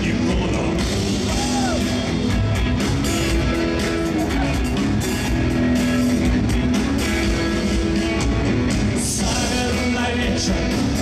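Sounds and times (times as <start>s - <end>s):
drum kit beat: 0.0s - 11.0s
electric guitars: 0.0s - 11.0s.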